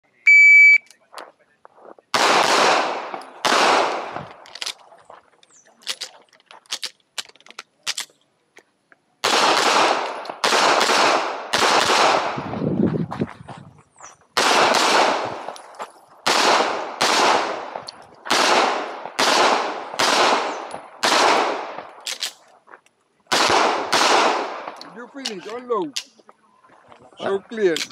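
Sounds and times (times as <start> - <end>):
shot timer beep: 0.2 - 0.9
pistol shots: 2.1 - 4.4, 9.2 - 12.5, 14.4 - 15.6, 16.2 - 22.3, 23.3 - 25.4.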